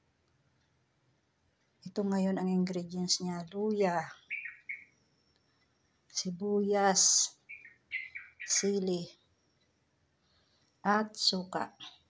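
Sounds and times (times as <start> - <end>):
small bird chirping: 3.4 - 9.8.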